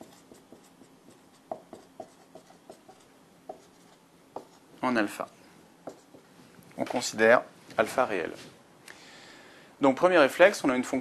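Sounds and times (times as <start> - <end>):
marker scratching on whiteboard: 0.0 - 6.3.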